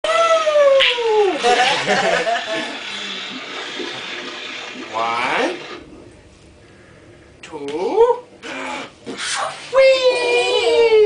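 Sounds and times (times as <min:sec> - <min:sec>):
person laughing: 0:01.3 - 0:02.8
high-pitched playful squeal: 0:08.6 - 0:11.0.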